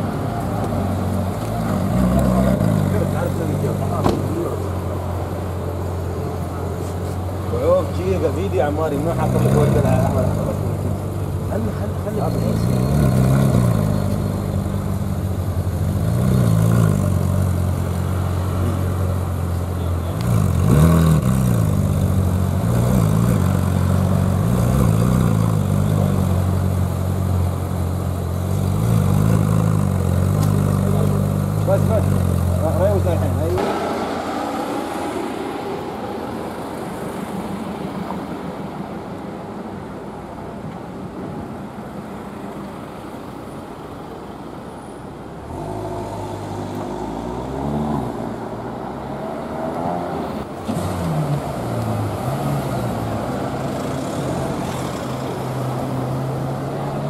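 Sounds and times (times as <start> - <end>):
car engine idling and revving: 0.0 - 57.0
street traffic noise: 0.0 - 57.0.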